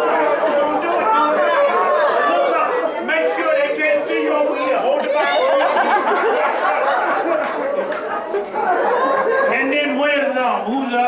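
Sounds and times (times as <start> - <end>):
man talking: 0.0 - 5.6, 9.5 - 11.0.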